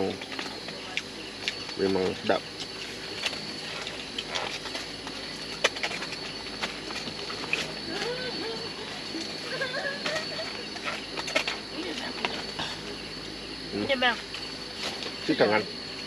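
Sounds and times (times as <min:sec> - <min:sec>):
high-pitched insect drone: 0:00.0 - 0:16.0
faint wavering voices: 0:07.2 - 0:14.2.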